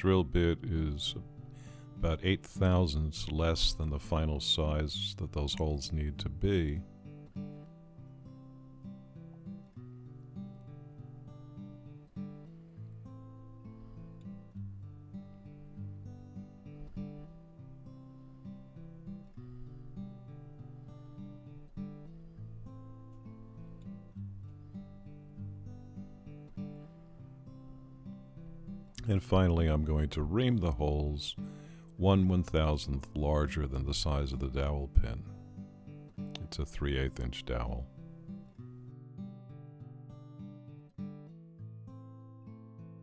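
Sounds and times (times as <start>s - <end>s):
acoustic guitar music: 0.0s - 43.0s.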